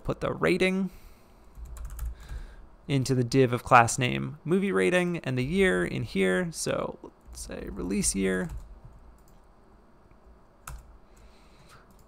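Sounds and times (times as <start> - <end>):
typing on computer keyboard: 1.5 - 2.4, 10.6 - 10.9.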